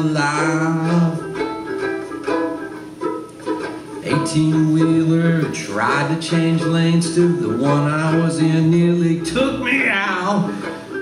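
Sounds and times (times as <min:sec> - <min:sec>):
banjo ukulele strumming: 0:00.0 - 0:11.0.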